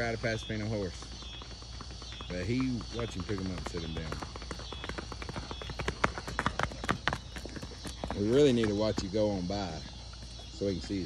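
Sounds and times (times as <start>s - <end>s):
horse hooves on asphalt: 0.0s - 11.0s.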